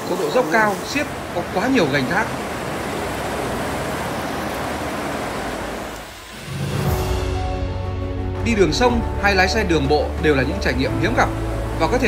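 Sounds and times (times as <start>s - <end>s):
water rushing past boat: 0.0s - 12.0s
background music: 6.3s - 12.0s.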